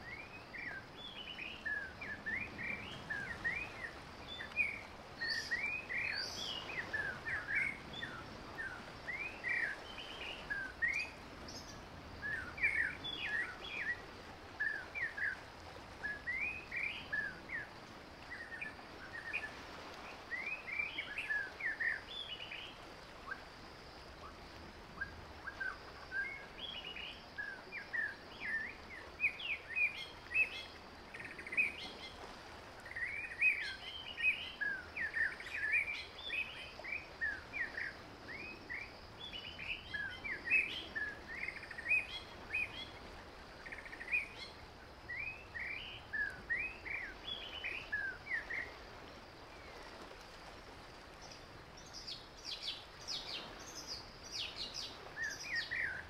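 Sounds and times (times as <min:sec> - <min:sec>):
faint steady hiss: 0:00.0 - 0:56.0.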